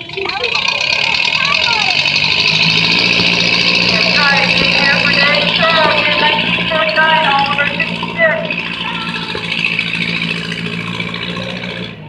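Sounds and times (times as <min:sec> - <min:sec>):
tractor engine droning under load: 0:00.0 - 0:12.0
voices talking: 0:00.0 - 0:12.0.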